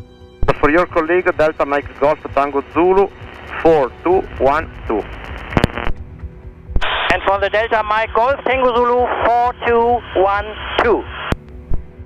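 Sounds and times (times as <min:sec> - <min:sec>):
radio hiss: 0:00.4 - 0:06.0, 0:06.7 - 0:11.4
propeller engine drone: 0:00.5 - 0:06.7
radio click: 0:04.9 - 0:06.0.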